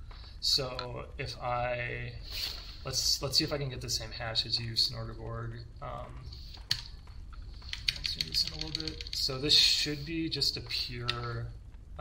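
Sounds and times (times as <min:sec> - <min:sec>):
typing on computer keyboard: 0:07.6 - 0:09.3.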